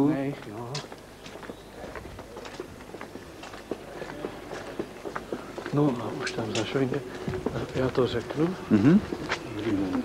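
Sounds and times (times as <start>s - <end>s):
faint outdoor background noise: 0.0s - 10.0s
footsteps on pavement: 0.0s - 10.0s.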